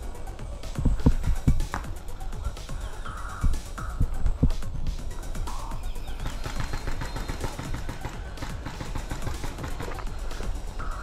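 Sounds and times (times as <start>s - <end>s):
paintball markers firing: 6.1s - 10.6s.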